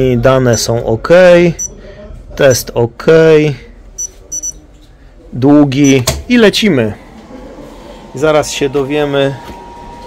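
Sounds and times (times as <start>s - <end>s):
electronic keypad beeps: 4.0s - 4.6s, 5.8s - 6.0s.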